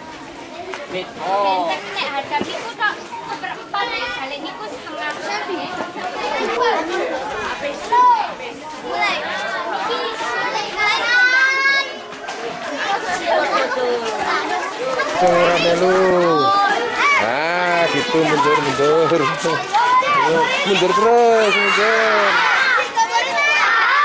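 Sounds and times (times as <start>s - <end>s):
schoolchildren chattering: 0.0s - 24.0s
child shouting: 18.2s - 24.0s.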